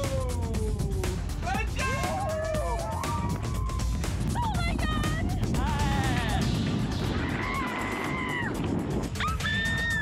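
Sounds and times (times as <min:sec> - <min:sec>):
background music with steady beat: 0:00.0 - 0:10.0
people screaming: 0:01.9 - 0:04.0, 0:07.1 - 0:10.0.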